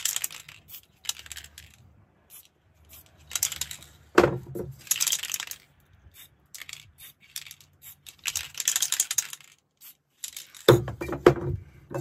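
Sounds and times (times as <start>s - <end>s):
spray can clicks and rattles: 0.0s - 10.9s.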